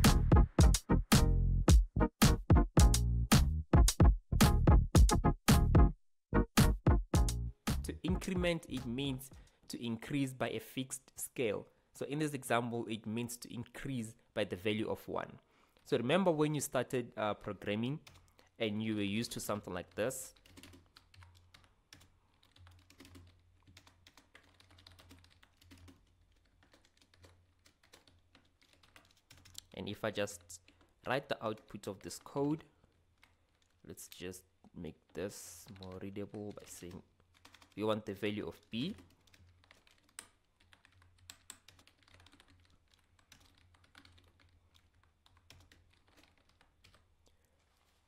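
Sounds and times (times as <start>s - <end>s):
typing on a keyboard: 18.0s - 18.4s, 19.3s - 33.8s, 35.1s - 48.0s.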